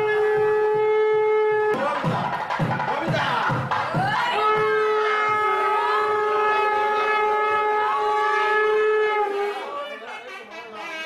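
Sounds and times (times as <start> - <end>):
conch shell blown: 0.0 - 1.8, 4.2 - 9.6.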